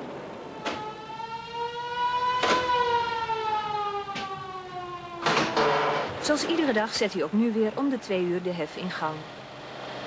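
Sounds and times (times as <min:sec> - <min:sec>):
warning siren wailing: 0:00.2 - 0:07.4.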